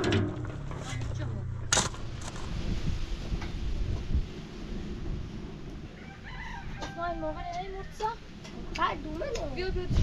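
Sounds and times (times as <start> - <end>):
steady low rumble: 0.0 - 10.0
rooster crowing: 5.9 - 8.1.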